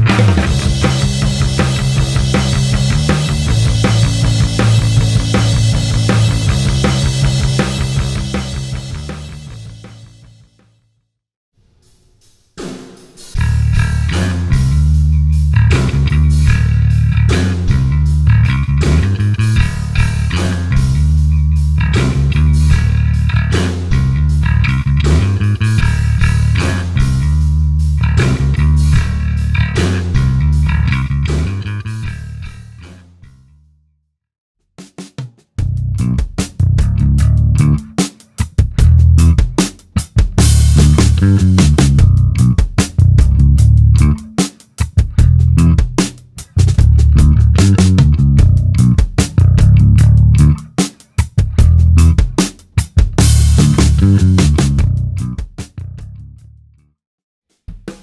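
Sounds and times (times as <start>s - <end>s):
electric bass guitar: 0.0s - 10.3s, 13.4s - 33.5s, 35.6s - 56.8s
drum beat: 0.0s - 10.5s, 34.7s - 55.9s, 57.5s - 58.0s.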